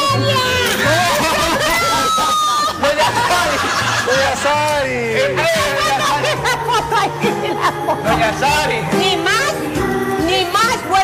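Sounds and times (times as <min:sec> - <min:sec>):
people laughing in quick bursts: 0:00.8 - 0:08.2.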